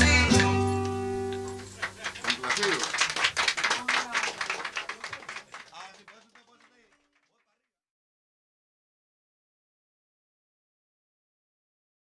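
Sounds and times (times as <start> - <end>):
scattered handclaps: 0.3 - 7.6
voices: 1.4 - 7.1.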